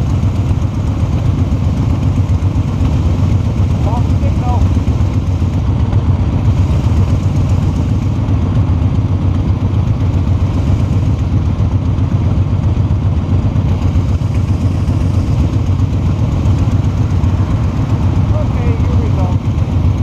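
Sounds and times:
motorcycle engine idling: 0.0s - 20.0s.

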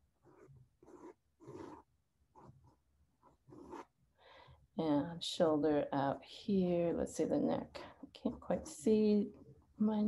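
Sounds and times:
pencil sketching on paper: 0.0s - 4.1s.

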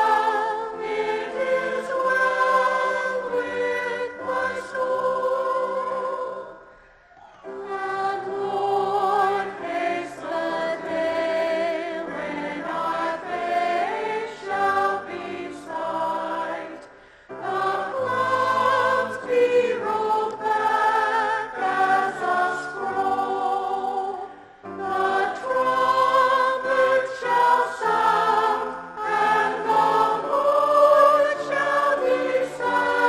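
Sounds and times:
mixed choir singing: 0.0s - 33.0s.

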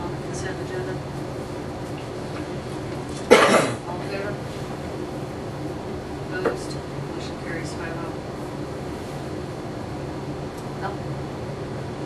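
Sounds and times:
low room hum: 0.0s - 12.0s
loud cough: 3.3s - 3.8s.

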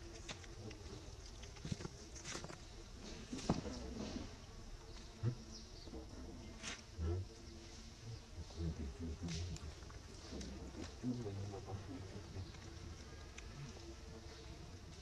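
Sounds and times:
insects buzzing: 0.0s - 15.0s.

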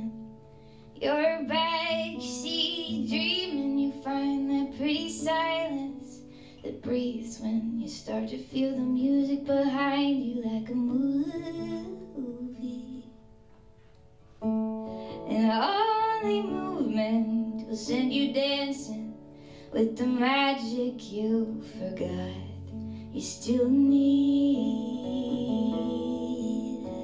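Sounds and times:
woman singing: 0.0s - 0.2s, 1.0s - 13.2s, 15.1s - 27.0s
fingerpicked acoustic guitar: 0.0s - 27.0s.

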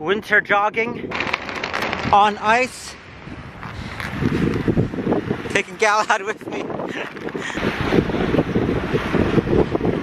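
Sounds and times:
wind buffeting microphone: 0.7s - 10.0s.

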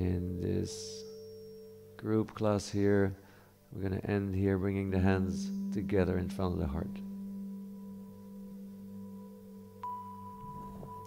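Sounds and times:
drone of held tones: 0.0s - 11.0s.

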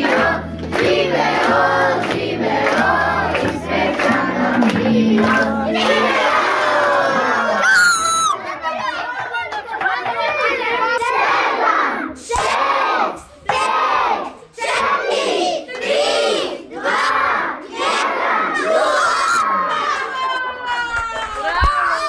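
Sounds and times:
children chanting: 0.0s - 7.6s, 8.4s - 20.0s.

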